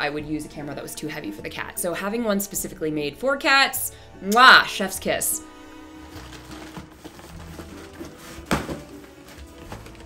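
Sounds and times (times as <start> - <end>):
soft background music: 0.0 - 10.0
cardboard box flaps knocking and scraping: 6.3 - 10.0.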